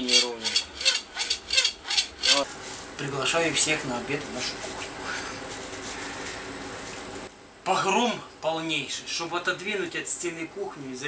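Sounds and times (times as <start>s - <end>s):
hacksaw cutting plastic pipe: 0.0s - 2.4s.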